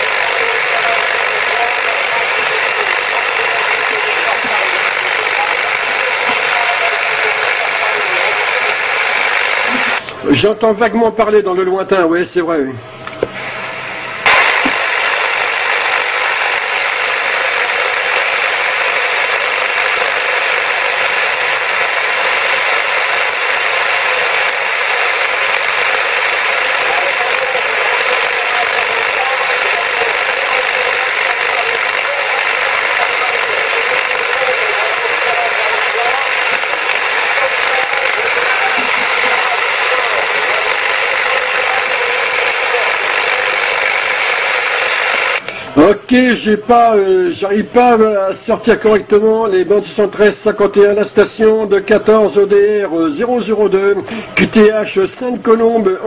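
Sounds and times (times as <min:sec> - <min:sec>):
radio click: 0:00.0 - 0:10.2, 0:13.0 - 0:13.4, 0:14.2 - 0:45.7
radio receiver hiss: 0:00.0 - 0:10.6, 0:12.4 - 0:46.8.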